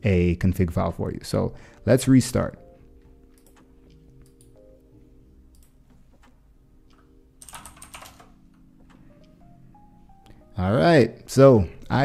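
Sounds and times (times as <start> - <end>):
computer keyboard keystrokes: 3.2 - 4.6, 5.5 - 9.4.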